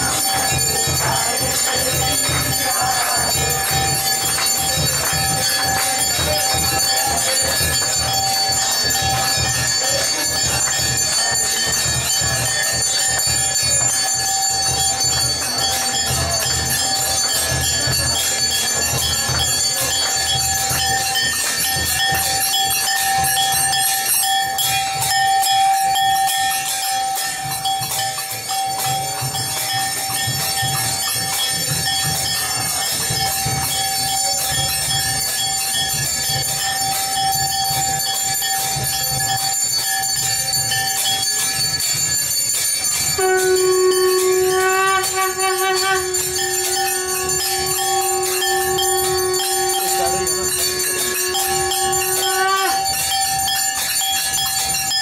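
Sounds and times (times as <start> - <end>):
bells clanging rapidly: 0.0 - 55.0
sustained ringing tone: 0.0 - 55.0
low pulsing beat: 43.2 - 53.0.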